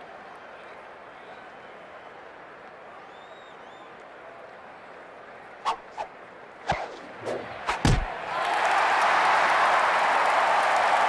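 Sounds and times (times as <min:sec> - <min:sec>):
loud thump: 0:07.7 - 0:08.1.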